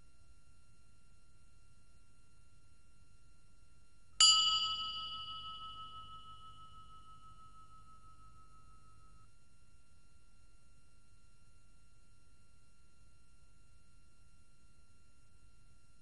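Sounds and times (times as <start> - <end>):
bell-like chime: 4.2 - 9.2.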